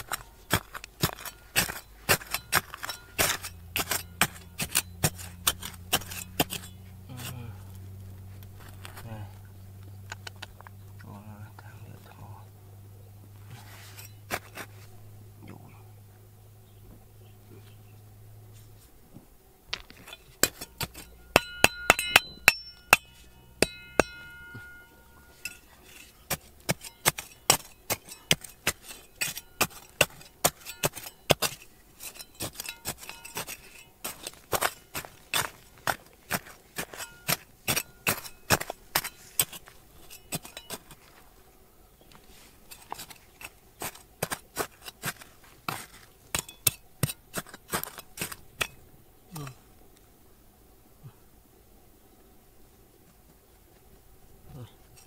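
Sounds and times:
trowel scraping and clinking on stones: 0.0s - 7.4s, 13.4s - 14.8s, 19.7s - 41.2s, 42.2s - 48.8s.

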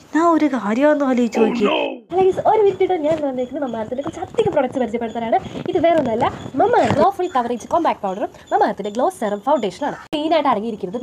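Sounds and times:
woman speaking: 0.1s - 11.0s.

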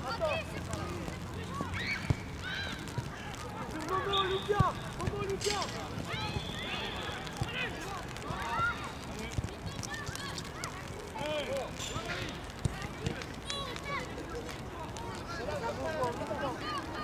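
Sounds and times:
children shouting: 1.5s - 3.1s.

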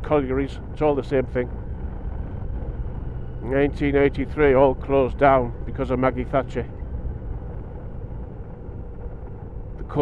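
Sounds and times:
motorcycle engine rumble: 0.0s - 10.0s
wind noise: 0.0s - 10.0s.

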